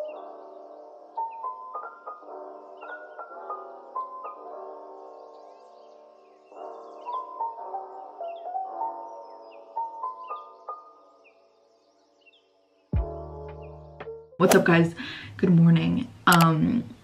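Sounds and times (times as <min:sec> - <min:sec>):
gentle instrumental music: 0:00.0 - 0:17.0.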